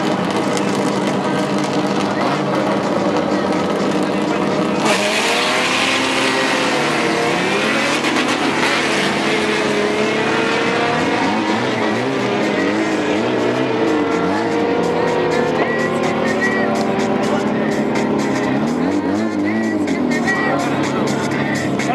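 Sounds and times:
crowd voices: 0.0s - 21.9s
race car engine accelerating: 0.0s - 21.9s.

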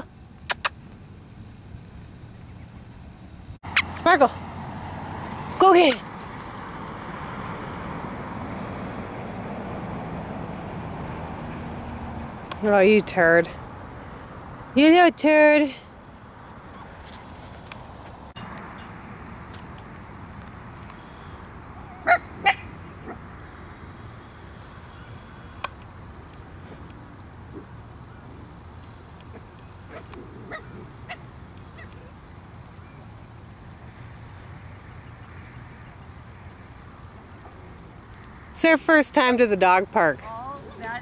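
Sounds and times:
road traffic passing: 0.0s - 41.0s
sharp click: 0.5s - 0.8s
dog barking: 21.9s - 23.2s, 29.9s - 31.2s.

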